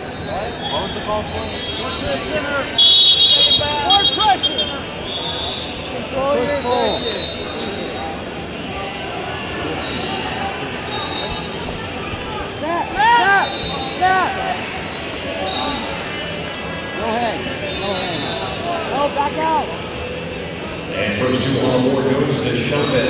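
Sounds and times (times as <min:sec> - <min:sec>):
referee whistle tones: 0:00.2 - 0:06.0, 0:06.6 - 0:08.2, 0:10.9 - 0:11.6
people shouting coaching: 0:00.6 - 0:04.9, 0:12.6 - 0:14.6.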